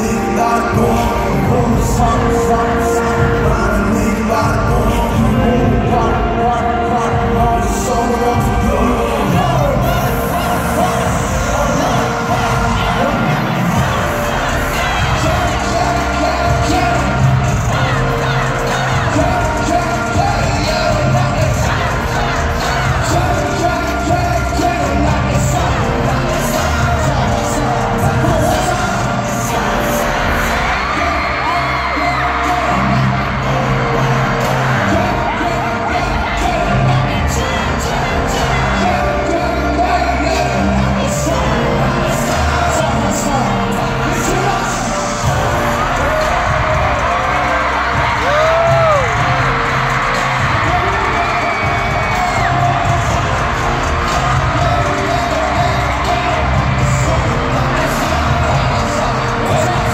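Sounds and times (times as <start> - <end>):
crowd screaming and singing along: 0.0 - 59.9
man singing over heavy bass: 0.0 - 59.9
pop song over arena speakers: 0.0 - 59.9.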